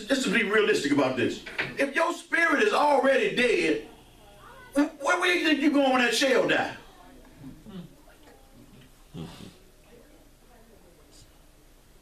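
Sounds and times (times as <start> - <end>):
quiet room hum: 0.0 - 12.0
person murmuring: 7.4 - 8.1, 9.1 - 9.6.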